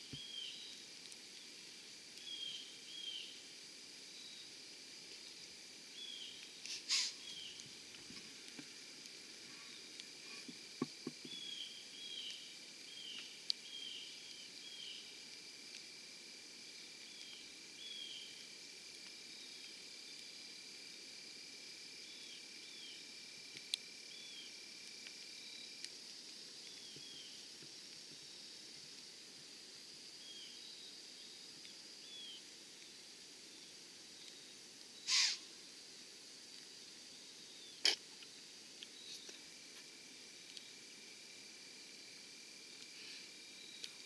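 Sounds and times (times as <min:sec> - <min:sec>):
high insect drone: 0:00.0 - 0:44.0
faint clicks: 0:40.4 - 0:40.7.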